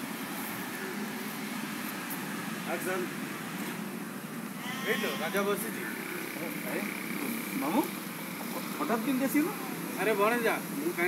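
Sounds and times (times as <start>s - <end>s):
drawn-out wavering call: 4.6s - 6.2s.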